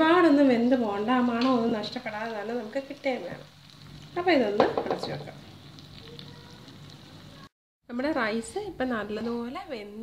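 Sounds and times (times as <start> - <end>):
food sizzling in a wok: 0.0 - 7.6.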